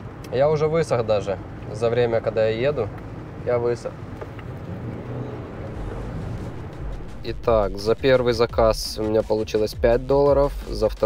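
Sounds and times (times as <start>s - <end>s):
car road noise: 0.0s - 9.7s.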